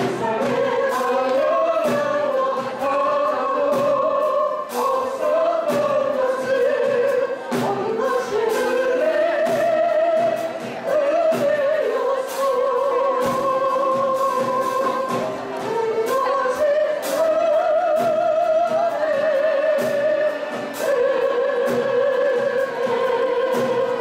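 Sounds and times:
woman singing into microphone: 0.0 - 24.0.

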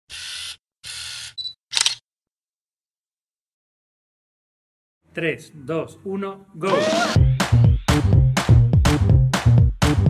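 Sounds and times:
camera shutter clicks: 1.7 - 2.0.

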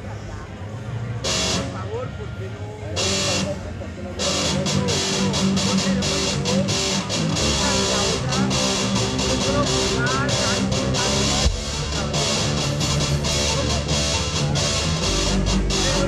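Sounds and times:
held bass notes: 0.8 - 16.0
live rock band playing: 1.2 - 1.8, 3.0 - 16.0.

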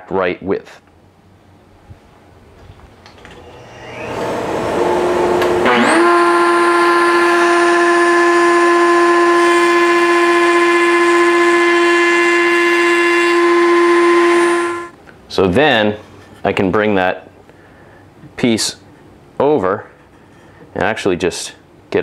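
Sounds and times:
router whining: 3.2 - 14.9
dust extraction vacuum hissing: 3.4 - 14.9.

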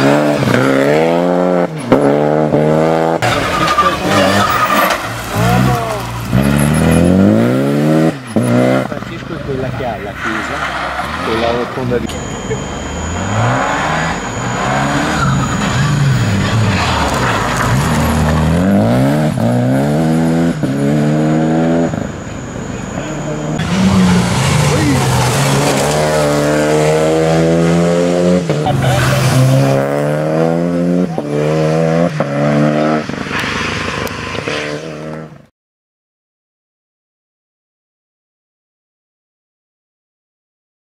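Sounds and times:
rally car accelerating through gears: 0.0 - 9.3, 10.1 - 35.4.

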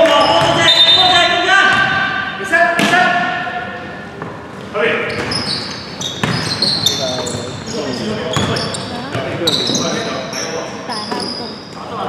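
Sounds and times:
sneakers squeaking: 0.0 - 2.1, 4.1 - 12.0.

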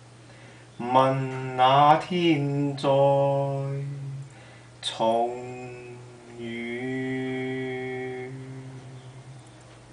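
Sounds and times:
solo voice singing a ballad: 0.8 - 9.5.

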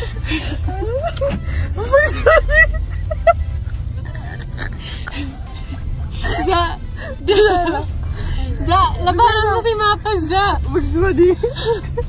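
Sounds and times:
car cabin rumble while driving: 0.0 - 12.0
high-pitched laughing and squealing: 0.3 - 7.9.

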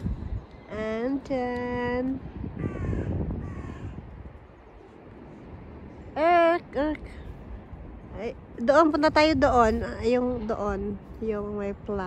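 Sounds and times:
crow cawing: 2.6 - 4.0.

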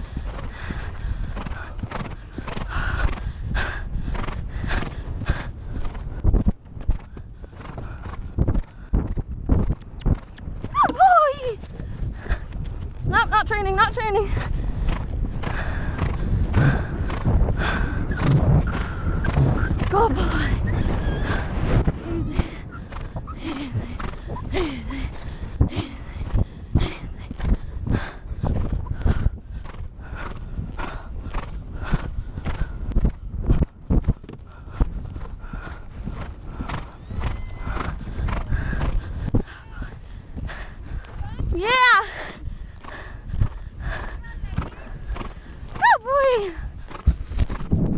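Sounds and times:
horse hoofbeats on grass: 0.0 - 24.6, 25.5 - 47.9
wind rushing on microphone: 0.0 - 47.9
horse whinny: 37.0 - 38.0.

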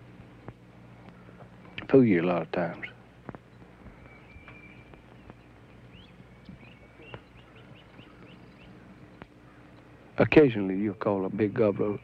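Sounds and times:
birds chirping: 0.0 - 12.0
low steady hum: 0.0 - 12.0.

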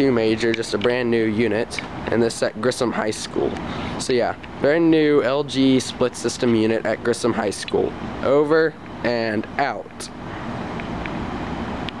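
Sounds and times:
outdoor unit fans running: 0.0 - 12.0.

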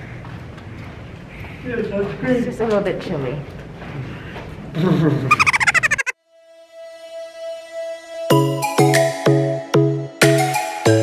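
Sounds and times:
person vocal sound: 5.3 - 6.1.

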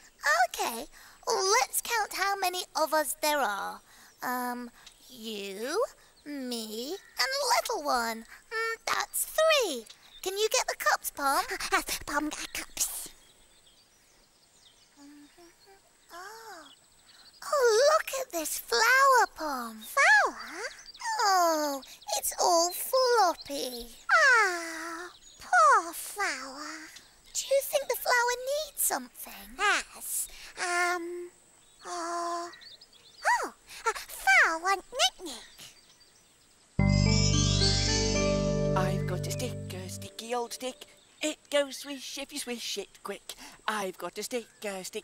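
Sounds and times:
puppet voice wordless sounds: 15.0 - 16.6, 17.4 - 31.3, 31.9 - 32.5, 33.2 - 35.7, 38.8 - 41.8
soft short notes: 36.8 - 40.5.

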